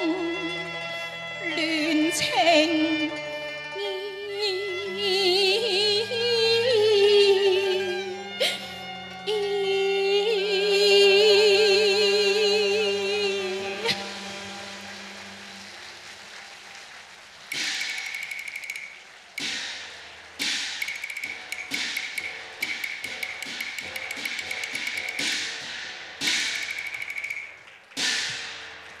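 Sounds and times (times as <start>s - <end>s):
music: 0.0s - 29.0s
fast rolled drum strokes: 17.5s - 28.6s.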